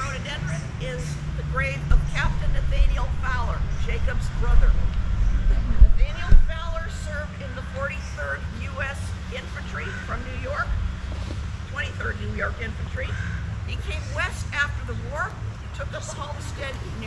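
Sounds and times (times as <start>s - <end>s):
distant indistinct talking: 0.0s - 17.0s
steady low rumble: 0.0s - 17.0s
low thumps: 1.9s - 7.0s.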